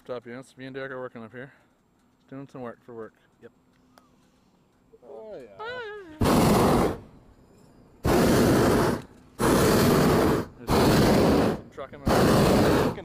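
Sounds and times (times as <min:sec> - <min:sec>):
propane burner blasts: 0:06.2 - 0:07.2, 0:08.0 - 0:13.0.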